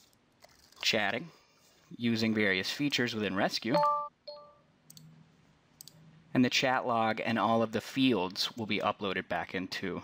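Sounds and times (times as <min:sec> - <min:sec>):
computer mouse clicking: 0:04.9 - 0:05.1.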